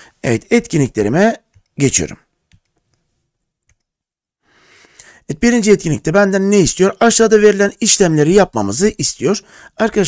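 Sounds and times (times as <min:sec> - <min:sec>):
person speaking: 0:00.0 - 0:02.7, 0:05.0 - 0:10.0
faint computer mouse clicks: 0:03.6 - 0:03.9.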